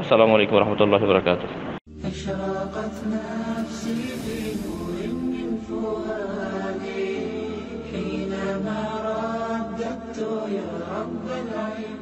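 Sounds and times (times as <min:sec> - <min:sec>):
steady low drone: 0:01.9 - 0:10.1.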